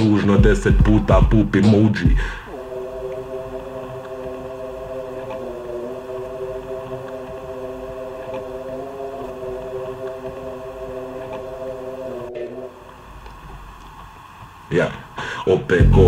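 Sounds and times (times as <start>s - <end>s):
faint low rumble: 15.8s - 16.0s.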